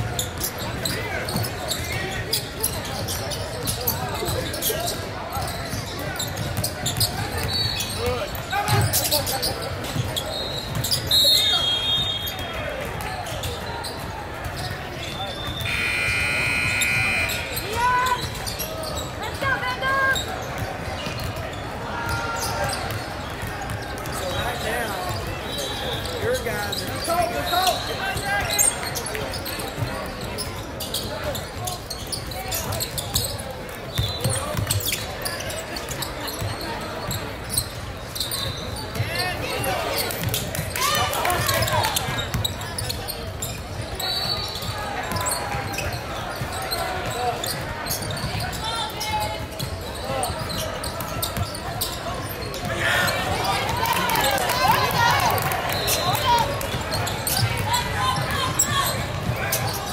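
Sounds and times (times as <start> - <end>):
people shouting and chattering: 0.0 - 59.9.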